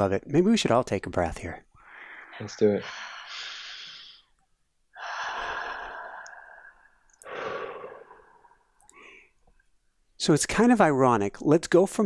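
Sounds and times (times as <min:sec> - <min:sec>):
people exhaling: 0:01.8 - 0:04.3, 0:05.0 - 0:09.4
people inhaling: 0:01.8 - 0:04.4, 0:05.0 - 0:09.5.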